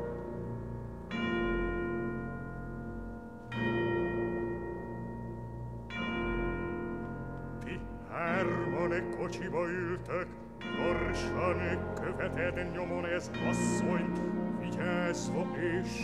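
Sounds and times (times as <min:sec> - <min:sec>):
sustained orchestral tones: 0:00.0 - 0:02.7, 0:05.3 - 0:16.0
orchestral bells tolling: 0:00.0 - 0:16.0
baritone singing: 0:07.6 - 0:16.0.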